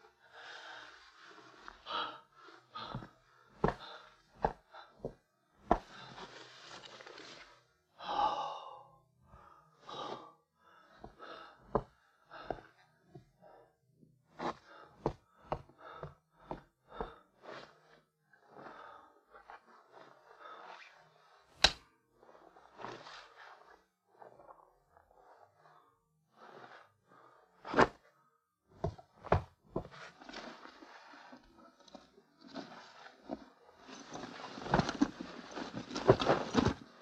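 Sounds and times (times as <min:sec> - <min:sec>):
man breathing heavily: 0:00.2 - 0:06.8, 0:07.9 - 0:19.6.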